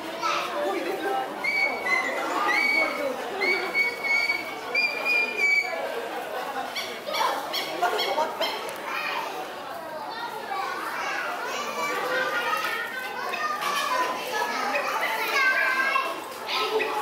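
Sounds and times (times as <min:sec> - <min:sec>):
children chattering and calling out: 0:00.0 - 0:17.0
people talking: 0:00.0 - 0:17.0.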